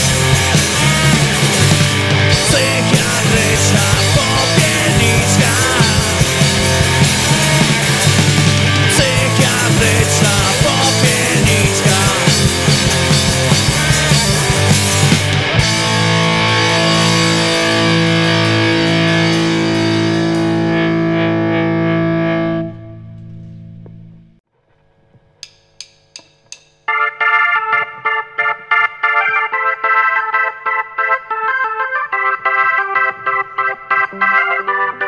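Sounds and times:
high keyboard notes: 0.0 - 23.2, 26.9 - 35.0
rock band final chord: 0.0 - 23.3
organ-like keyboard chords: 0.0 - 24.4, 26.9 - 35.0.

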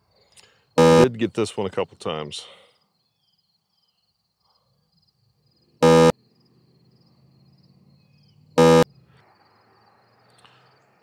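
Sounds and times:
insects chirping: 0.0 - 11.0
loud buzzy tones: 0.8 - 1.1, 5.8 - 6.1, 8.6 - 8.9.

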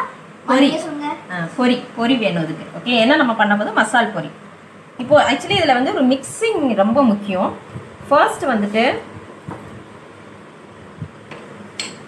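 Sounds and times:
glass clinking: 11.8 - 12.0.

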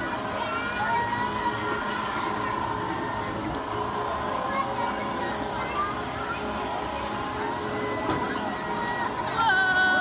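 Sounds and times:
faint crowd voices: 0.0 - 10.0
ride machine humming and whining: 0.0 - 10.0.

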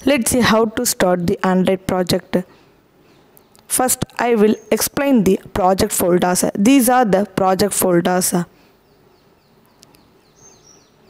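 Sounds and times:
small bird chirping: 0.0 - 11.0.

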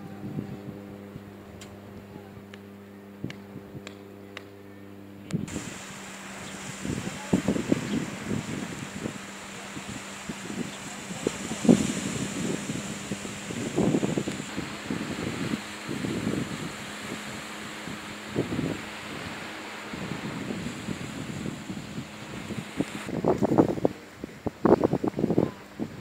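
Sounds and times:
wind buffeting microphone: 0.0 - 4.0, 5.3 - 26.0
steady hiss: 5.5 - 26.0.

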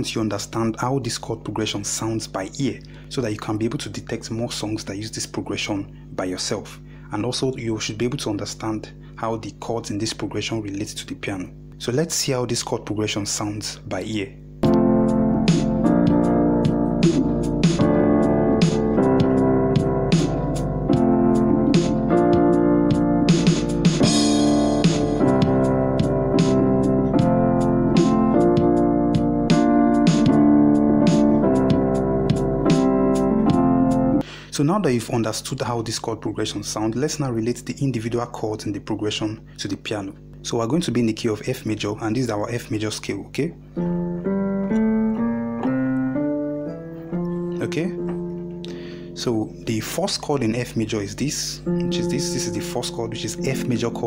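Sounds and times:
percussive beat: 14.6 - 27.4, 28.0 - 30.4
keyboard playing held chords: 14.6 - 34.2, 43.6 - 49.9, 51.4 - 54.0.

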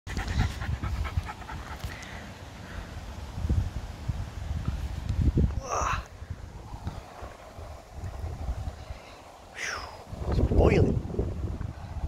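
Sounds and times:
dog panting fast: 0.1 - 2.0.

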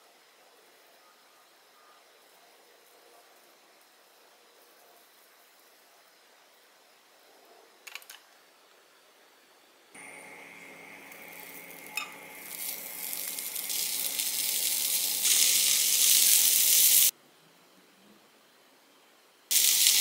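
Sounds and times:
mushroom rolls sizzling in a pan: 10.0 - 17.1, 19.5 - 20.0.

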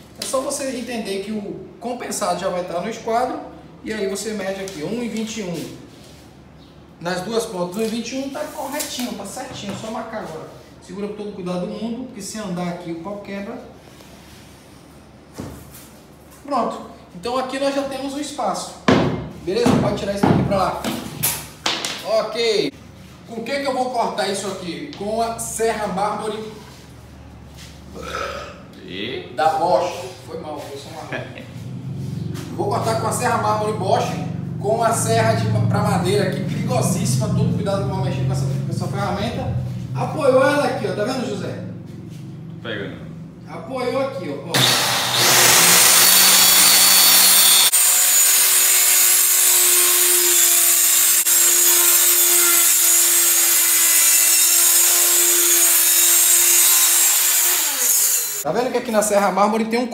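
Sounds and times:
circular saw whining: 44.6 - 58.4.

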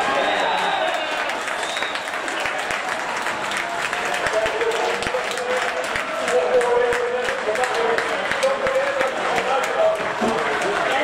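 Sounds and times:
referee's whistle blast: 0.0 - 2.2
crowd applauding: 0.0 - 11.0.

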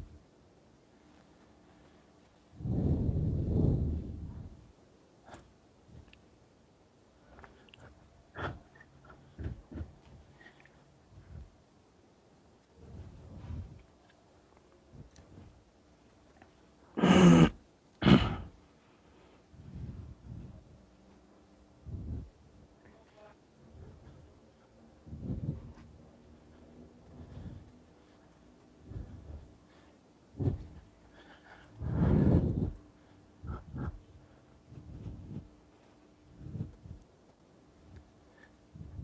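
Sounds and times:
man breathing heavily: 1.6 - 6.2, 7.1 - 11.7, 12.7 - 14.0, 14.8 - 15.7, 18.2 - 22.7, 23.6 - 39.0.

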